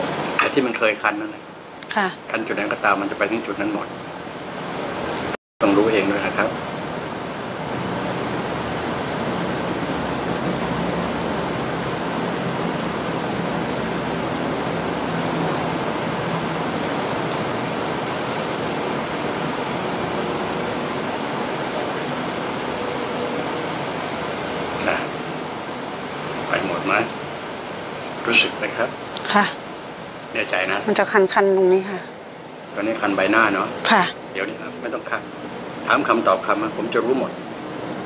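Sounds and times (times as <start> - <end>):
steady hiss: 0.0 - 1.6, 2.3 - 38.0.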